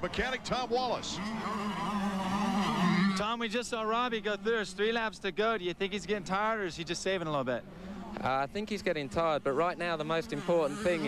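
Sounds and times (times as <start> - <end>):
motorcycle engine at high revs: 0.2 - 4.8, 7.8 - 11.0.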